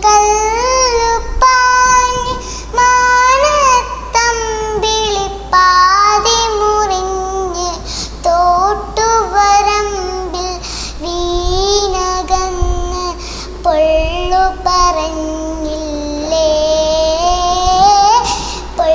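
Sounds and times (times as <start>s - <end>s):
girl singing solo: 0.0s - 18.9s.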